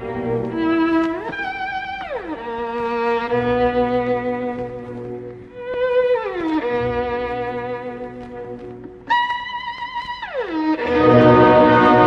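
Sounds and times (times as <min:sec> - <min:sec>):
orchestral string passage: 0:10.6 - 0:12.0
violin note sliding down: 0:10.7 - 0:12.0.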